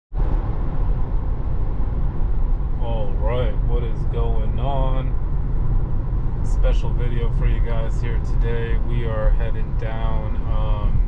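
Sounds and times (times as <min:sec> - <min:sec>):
road and tyre noise in car: 0:00.1 - 0:11.0.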